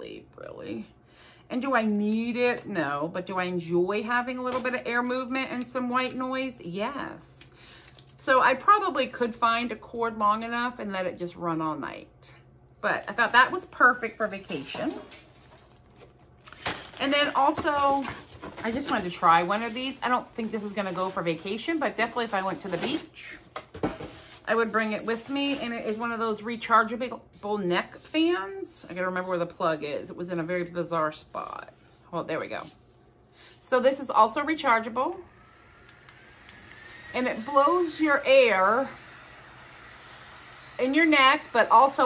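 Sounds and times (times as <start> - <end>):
rustling and knocking of items: 14.2 - 26.4
small fan motor whine: 34.4 - 42.0.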